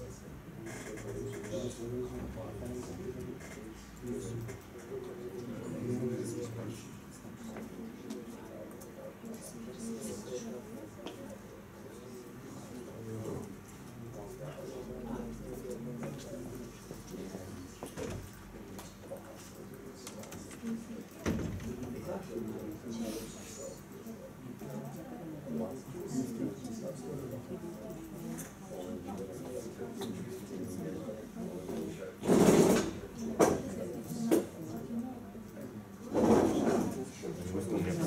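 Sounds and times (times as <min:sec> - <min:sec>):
murmur of voices: 0:00.0 - 0:38.0.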